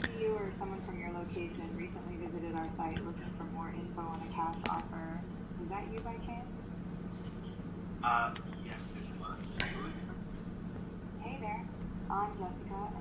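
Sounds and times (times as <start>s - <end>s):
synthetic woman's voice speaking: 0.0s - 6.5s.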